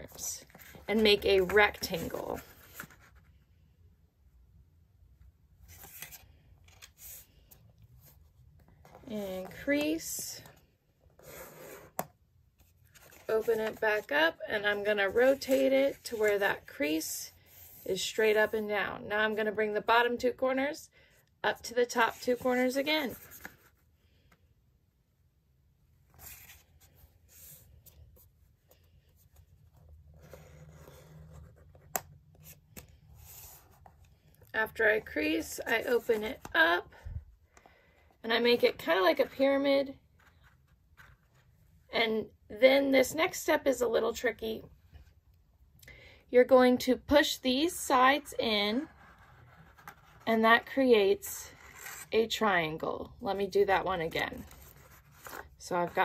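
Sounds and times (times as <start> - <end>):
paper folding and rustling: 5.6 - 10.6, 54.3 - 55.6
paper rustling and sliding: 5.6 - 10.6, 26.1 - 31.7.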